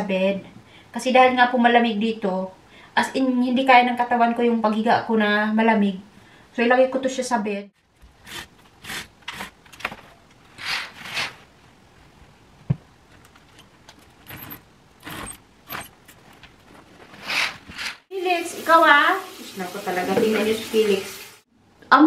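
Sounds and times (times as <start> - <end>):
curtains sliding along rail: 8.2 - 11.5, 13.2 - 18.1
curtain rings jangling: 13.2 - 17.5.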